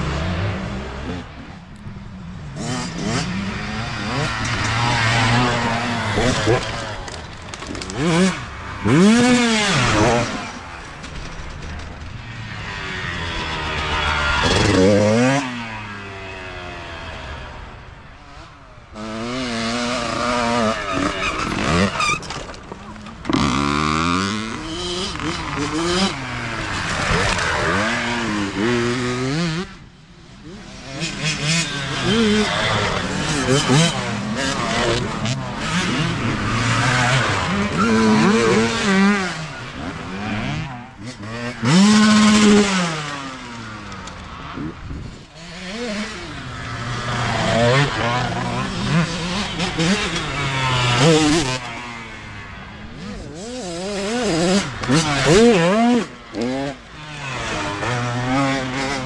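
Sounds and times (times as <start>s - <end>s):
dirt bikes passing: 0.0s - 59.0s.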